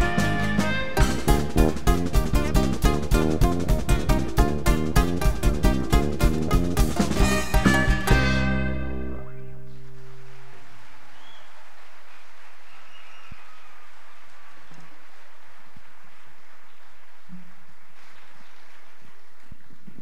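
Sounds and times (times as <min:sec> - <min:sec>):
concert audience ambience: 0:00.0 - 0:20.0
faint high whistles: 0:11.1 - 0:11.6, 0:12.6 - 0:13.8.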